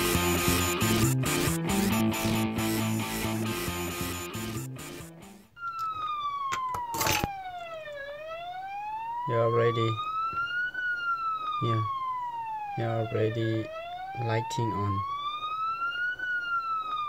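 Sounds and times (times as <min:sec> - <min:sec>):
background rock music: 0:00.0 - 0:05.4
siren wail: 0:00.0 - 0:17.0.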